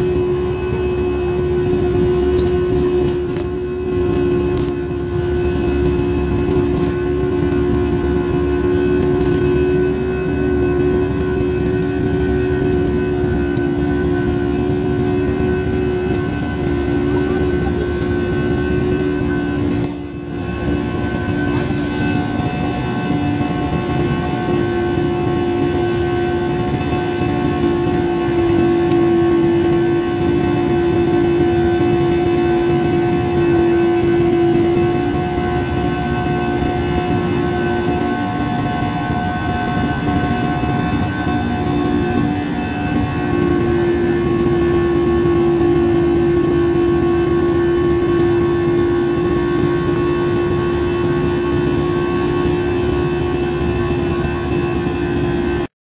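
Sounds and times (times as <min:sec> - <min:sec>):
jet engines droning in cabin: 0:00.0 - 0:55.8.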